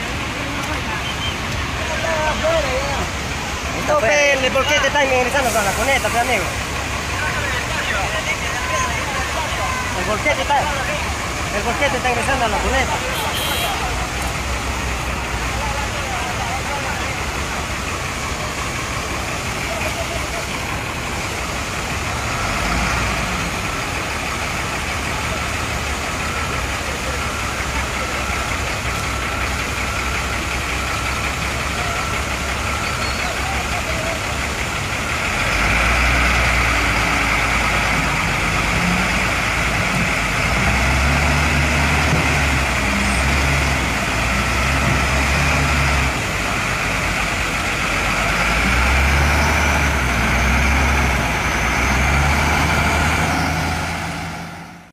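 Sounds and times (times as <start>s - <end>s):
heavy diesel engine under load: 0.0s - 54.9s.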